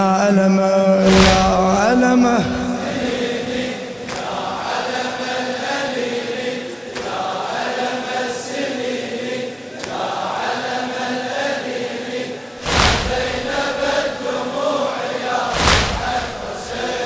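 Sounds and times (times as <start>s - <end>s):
congregation chanting a lament: 0.0s - 17.0s.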